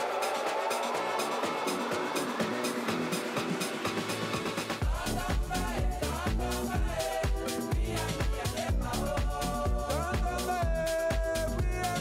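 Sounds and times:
house dance music: 0.0 - 12.0.

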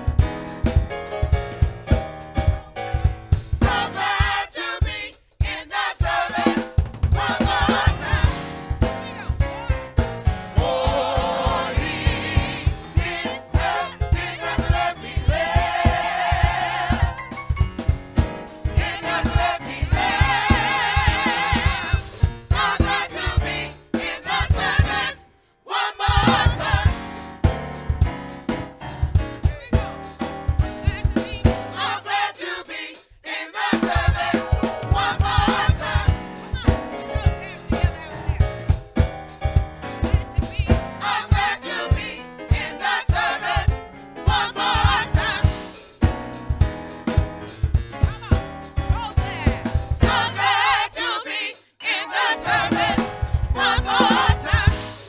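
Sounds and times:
accompaniment with low beat: 0.0 - 25.2, 26.0 - 32.2, 33.8 - 50.8
choir singing into microphones: 3.6 - 9.3, 10.4 - 17.4, 18.6 - 27.2, 30.9 - 38.2, 40.3 - 45.8, 49.3 - 55.0.

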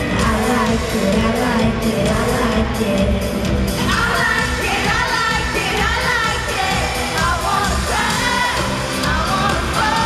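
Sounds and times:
live pop-rock band: 0.0 - 10.0
woman singing: 0.0 - 10.0.

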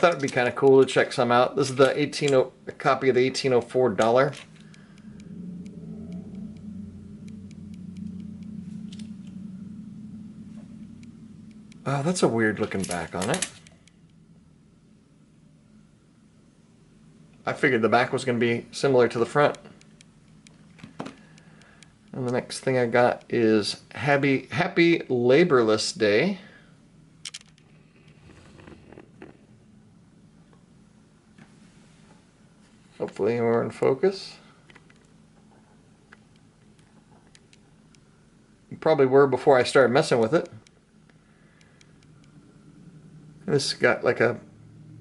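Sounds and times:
machine humming: 0.0 - 31.5
small clicks: 27.2 - 29.4.

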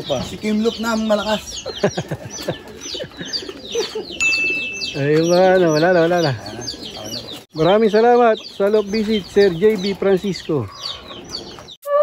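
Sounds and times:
high bird chirps: 0.0 - 12.0
pigeons cooing: 0.0 - 12.0.

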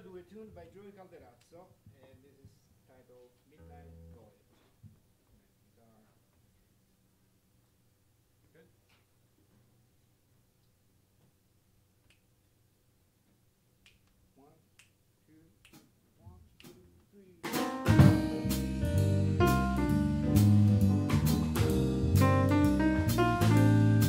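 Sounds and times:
jazz band playing: 17.4 - 24.0.

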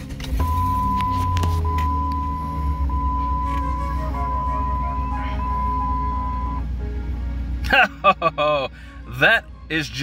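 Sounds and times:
car engine idling: 0.0 - 10.0
soft background music: 0.0 - 10.0.

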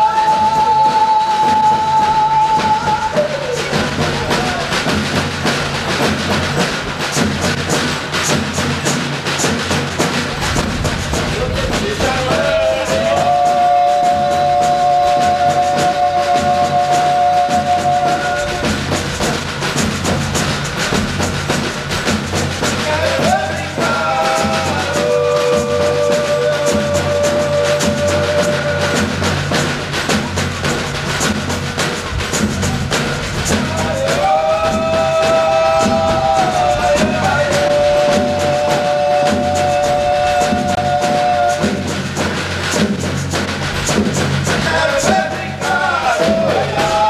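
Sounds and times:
man singing into a microphone: 0.0 - 3.7, 11.4 - 18.8, 22.8 - 29.2, 33.8 - 41.8, 44.6 - 47.0
drums beating a rhythm: 0.0 - 47.0.

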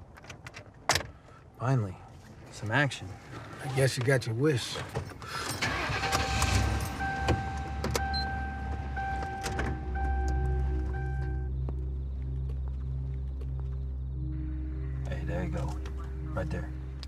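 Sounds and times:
car driving off: 5.4 - 11.5
low sustained drone: 6.4 - 17.0
pulsing steady tone: 6.7 - 17.0.

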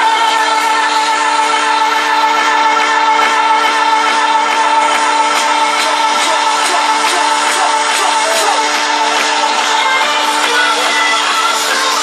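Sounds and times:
held synthesizer chord: 0.0 - 12.0.

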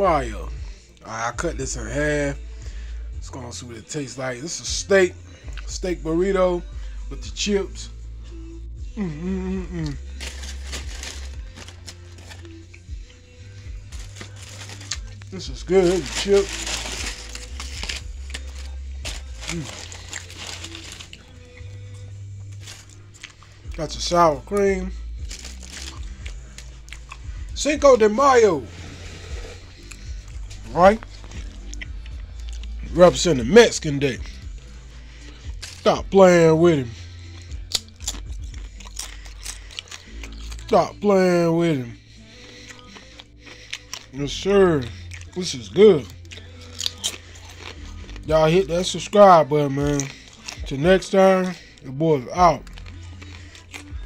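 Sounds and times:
background music with bass: 0.0 - 54.0
person chewing crunchy food: 9.0 - 24.0, 25.2 - 27.5, 28.4 - 32.9, 36.9 - 40.8, 42.0 - 54.0
foil and paper bag crinkling: 9.8 - 12.6, 13.9 - 21.5, 22.5 - 26.7.

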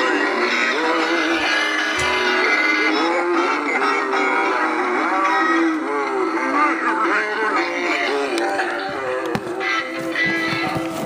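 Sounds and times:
electronic singing over music: 0.0 - 11.0.

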